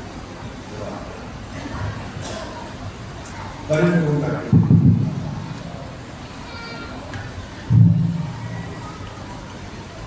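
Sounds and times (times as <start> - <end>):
crowd murmur: 0.0 - 10.0
boomy microphone thump: 4.5 - 5.3, 7.7 - 8.4.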